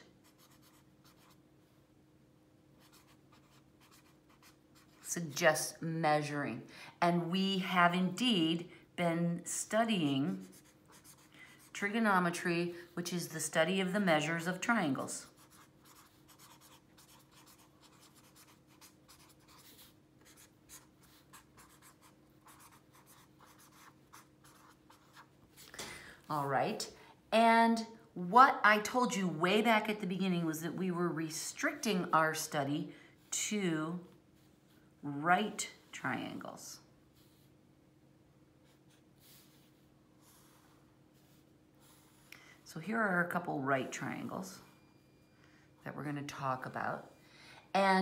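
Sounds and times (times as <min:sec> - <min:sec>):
low steady hum: 0:00.0 - 0:48.0
pen scratching on paper: 0:00.2 - 0:01.4, 0:02.8 - 0:05.1, 0:10.3 - 0:11.9, 0:15.2 - 0:25.3, 0:38.6 - 0:42.3.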